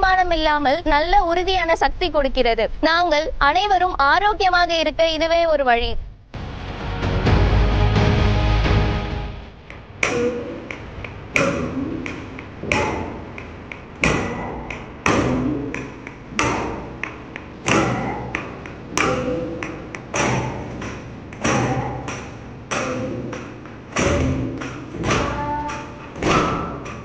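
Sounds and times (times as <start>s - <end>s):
wooden stick striking wooden block: 9.6s - 27.0s.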